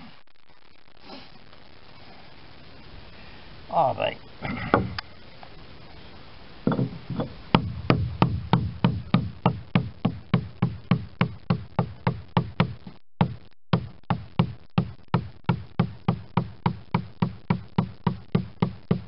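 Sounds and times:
mallet striking caulking iron: 6.7s - 19.0s.

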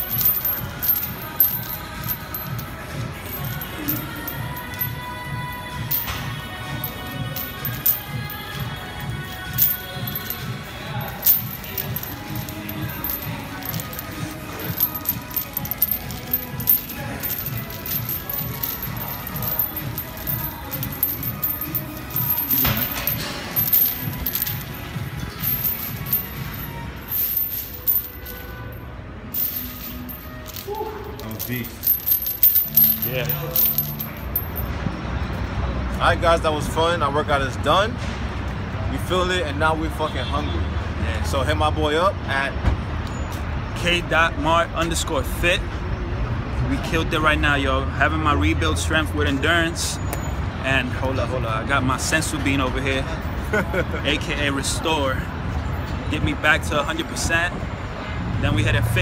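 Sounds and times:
steel chains clinking: 0.0s - 34.7s.

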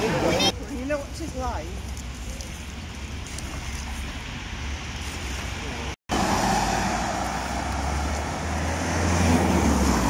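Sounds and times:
vehicle passing: 6.1s - 10.0s.

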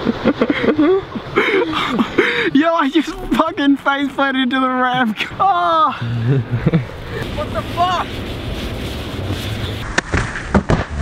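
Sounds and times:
steady rushing noise: 6.2s - 10.5s.

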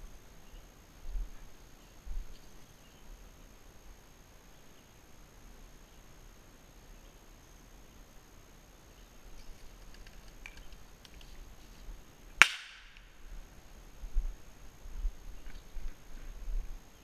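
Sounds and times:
rustling and steps through brush: 9.2s - 12.0s.

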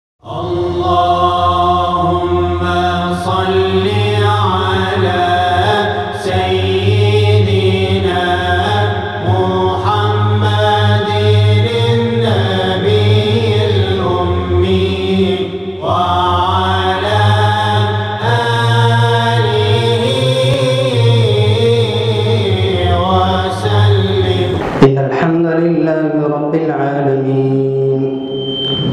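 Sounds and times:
person singing devotional chant: 0.2s - 28.3s.

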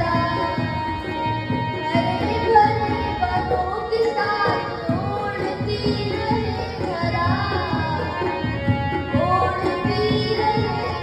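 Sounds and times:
boy singing into a microphone: 0.0s - 11.0s
tabla: 0.0s - 11.0s.

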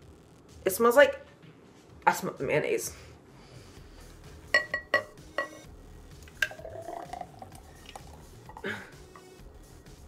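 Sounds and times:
glass clink: 4.6s - 5.7s
smoothie pouring into a glass: 6.3s - 8.6s.

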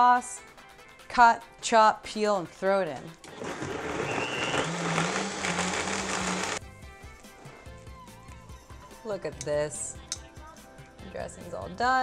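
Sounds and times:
countertop blender running: 3.3s - 6.6s.

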